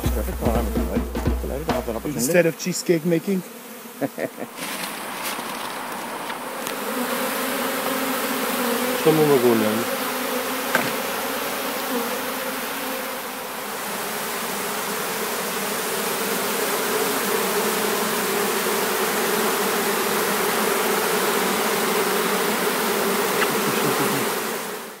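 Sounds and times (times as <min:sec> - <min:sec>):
bees buzzing: 0:00.0 - 0:25.0.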